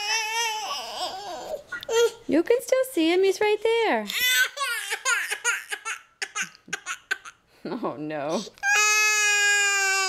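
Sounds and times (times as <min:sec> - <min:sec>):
toddler squealing: 0:00.0 - 0:02.2, 0:08.6 - 0:10.0.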